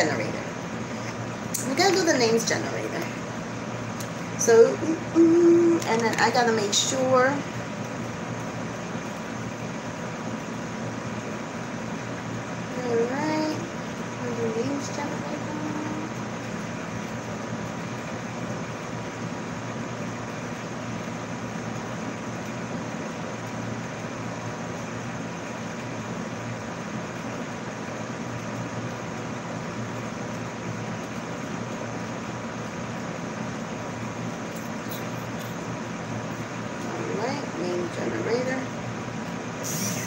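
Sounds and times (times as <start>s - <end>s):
room hum and hiss: 0.0s - 40.0s.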